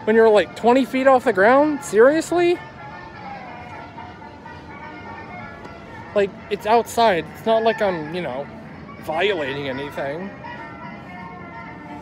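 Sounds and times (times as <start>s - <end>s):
faint music: 0.0s - 12.0s
steady outdoor hum: 0.0s - 12.0s.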